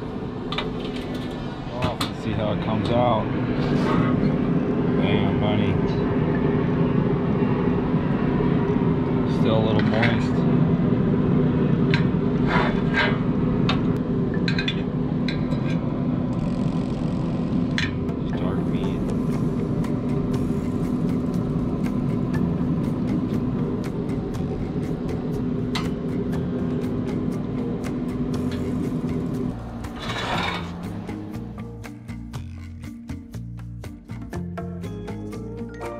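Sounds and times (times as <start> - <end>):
steady low hum: 0.0 - 35.6
music: 18.1 - 35.9.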